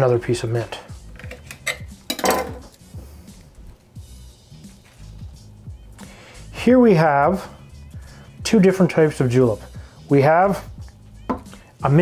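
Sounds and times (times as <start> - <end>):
quiet background music: 0.0 - 12.0
glass and ice clattering: 1.6 - 2.6.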